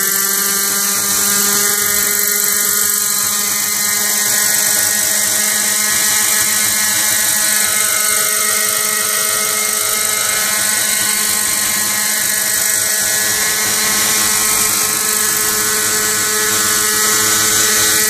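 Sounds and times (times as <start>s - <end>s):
model helicopter engine running: 0.0s - 18.0s.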